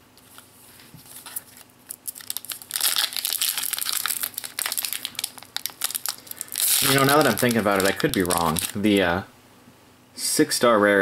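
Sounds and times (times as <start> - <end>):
foil wrapper crinkling: 1.1 - 9.0
foil wrapper tearing: 1.3 - 9.0.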